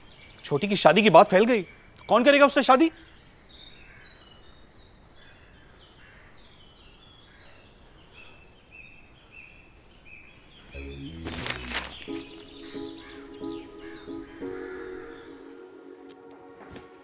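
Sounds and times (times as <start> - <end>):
birds chirping: 0.0 - 15.8
music: 10.8 - 17.0.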